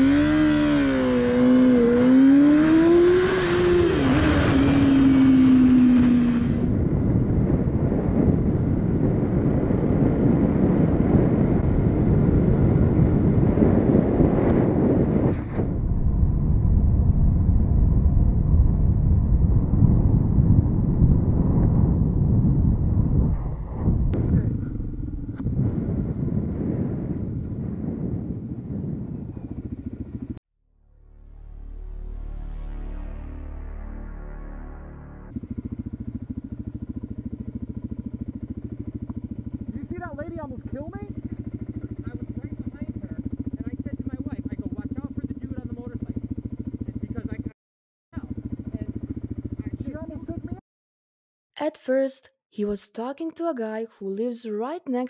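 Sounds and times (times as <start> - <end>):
motorcycle engine revving: 0.0 - 30.4, 34.5 - 50.6
wind noise: 0.0 - 30.4.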